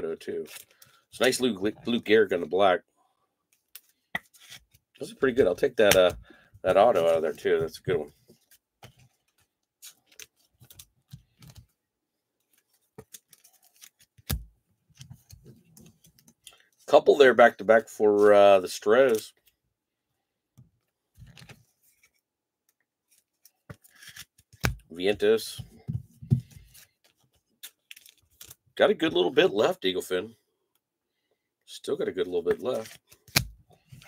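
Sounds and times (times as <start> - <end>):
cards scraping together: 23.1 - 24.7, 32.5 - 34.0.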